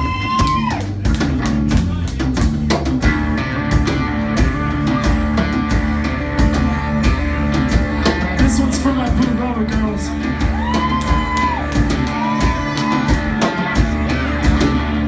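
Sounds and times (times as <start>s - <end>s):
rock band playing: 0.0s - 15.0s
sustained guitar chords: 3.0s - 15.0s.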